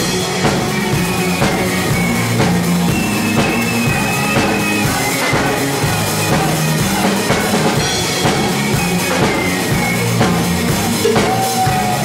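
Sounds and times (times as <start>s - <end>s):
bass guitar notes: 0.0s - 12.0s
drum kit beat: 0.0s - 12.0s
live band playing loudly: 0.0s - 12.0s.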